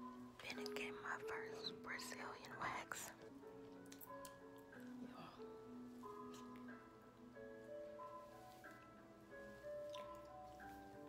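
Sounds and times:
soft background music: 0.0s - 11.0s
woman whispering: 0.4s - 3.3s.

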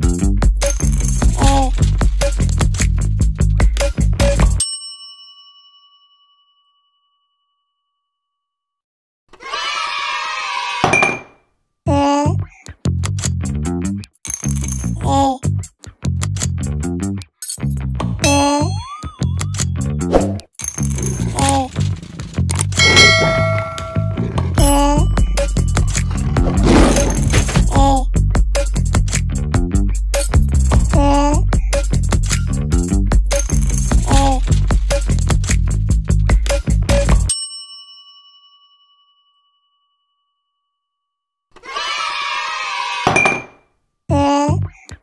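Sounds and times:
metallic bell ding: 4.6s - 7.6s, 22.8s - 26.2s, 37.3s - 40.4s
background music: 21.0s - 37.3s.

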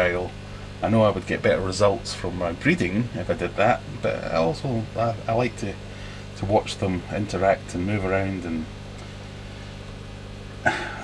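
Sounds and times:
low electrical hum of pumps: 0.0s - 11.0s.

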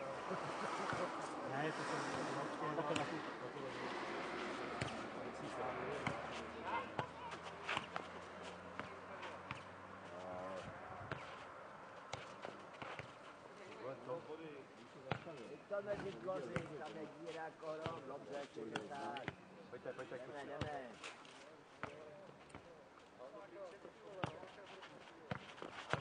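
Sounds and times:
ball kicked and bouncing on clay: 11.0s - 11.4s, 12.1s - 13.2s, 24.2s - 24.6s, 25.2s - 26.0s.

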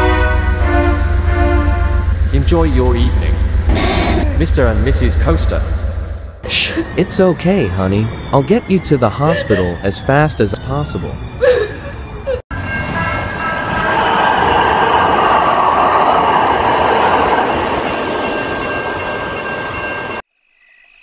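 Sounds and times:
train running past: 0.0s - 20.2s.

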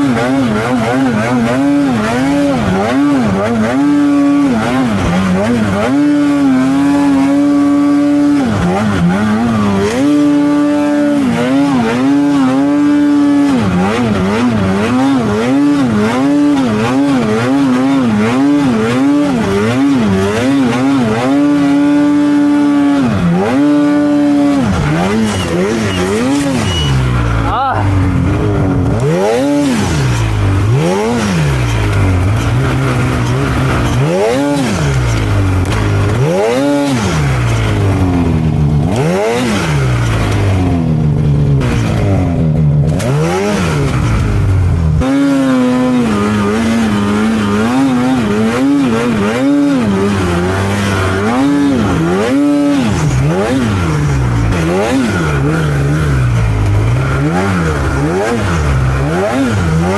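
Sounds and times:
snowmobile engine revving: 0.0s - 59.9s.

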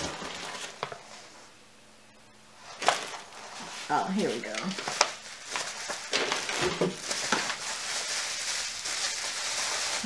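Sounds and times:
packaging rustling: 0.0s - 1.3s, 2.6s - 10.0s.

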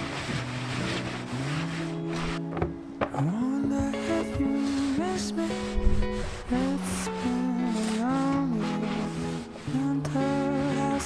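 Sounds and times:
background music with held notes: 0.0s - 11.0s
cloth wiping wooden bench: 0.0s - 11.0s.

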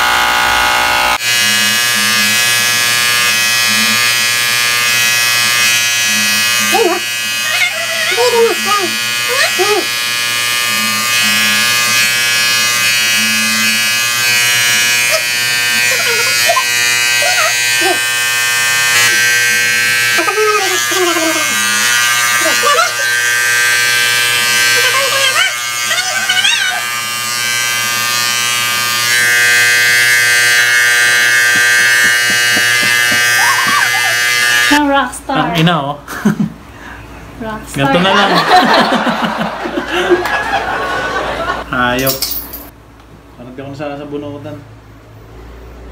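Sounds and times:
electric hair clippers buzzing: 0.0s - 34.9s.

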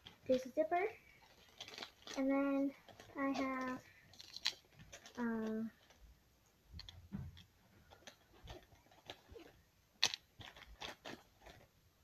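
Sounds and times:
rustling and light clicks: 0.0s - 11.8s.

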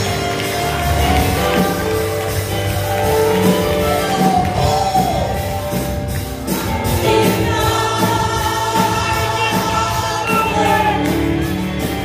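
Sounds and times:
keyboard bass and drums band: 0.0s - 12.0s
women singing together: 6.9s - 10.8s.

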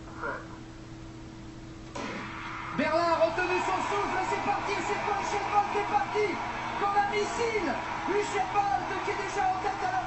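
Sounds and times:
low steady hum: 0.0s - 10.0s
stadium crowd noise: 2.2s - 10.0s
commentator speaking: 2.8s - 10.0s.

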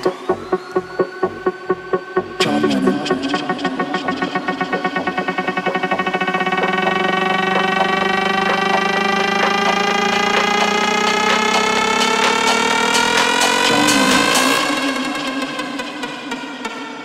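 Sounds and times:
rising buzzy synth tone: 0.0s - 15.7s
steady dance beat: 0.0s - 17.0s.

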